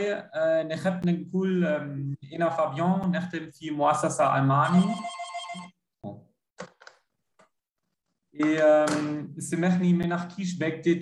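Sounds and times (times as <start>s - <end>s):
electronic ringing tone: 4.6s - 5.8s.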